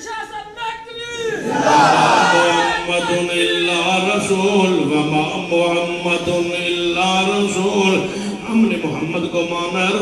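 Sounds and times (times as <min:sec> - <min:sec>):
man chanting into a microphone: 0:02.2 - 0:10.0.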